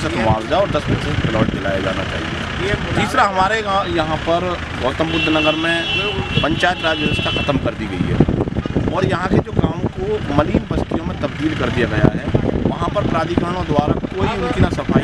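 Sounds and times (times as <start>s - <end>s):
man speaking into microphone: 0.0s - 15.0s
road traffic hum: 0.0s - 15.0s.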